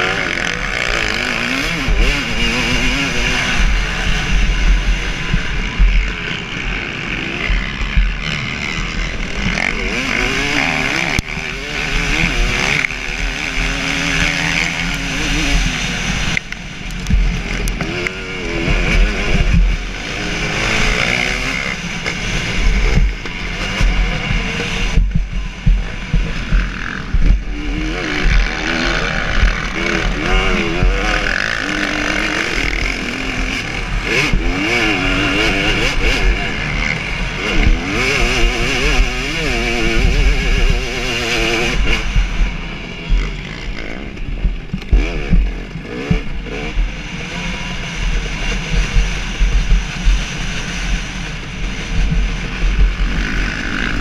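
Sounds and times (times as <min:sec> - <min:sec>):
motocross engine revving: 0:00.0 - 0:54.0.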